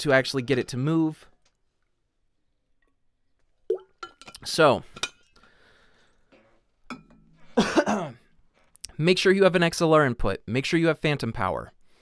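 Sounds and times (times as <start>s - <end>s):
throat-clearing cough: 7.6s - 8.2s.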